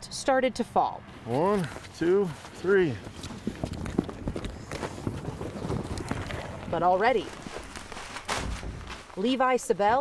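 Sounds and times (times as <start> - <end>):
footsteps: 1.1 - 10.0
plastic tarp rustling and crackling: 3.3 - 9.6.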